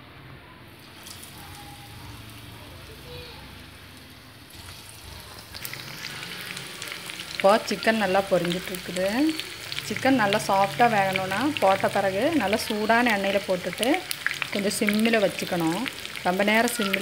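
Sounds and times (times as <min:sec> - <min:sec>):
chicken deep-frying in oil: 0:00.6 - 0:17.0.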